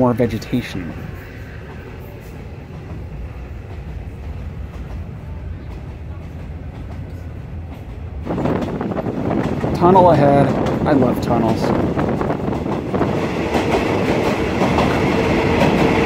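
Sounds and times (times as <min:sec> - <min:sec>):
train carriage rumble and rattle: 0:00.0 - 0:16.0.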